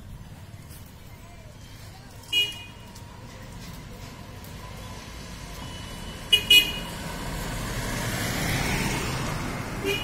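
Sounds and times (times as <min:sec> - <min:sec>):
vehicle approaching: 0:02.9 - 0:10.0
vehicle horn toots: 0:05.7 - 0:06.9.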